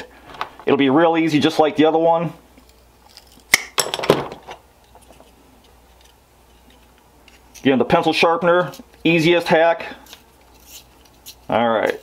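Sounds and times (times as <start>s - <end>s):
objects clattering on workbench: 3.8s - 5.3s.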